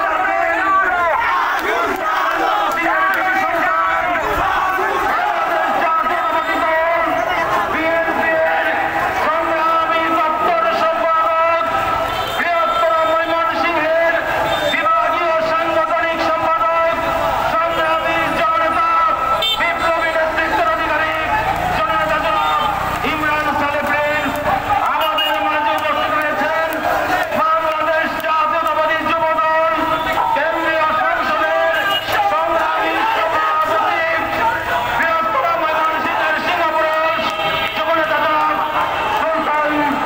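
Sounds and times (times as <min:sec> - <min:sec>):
crowd of men shouting slogans: 0:00.0 - 0:12.1, 0:13.4 - 0:40.0
street traffic: 0:00.0 - 0:40.0
man speaking: 0:02.7 - 0:11.8, 0:12.4 - 0:40.0.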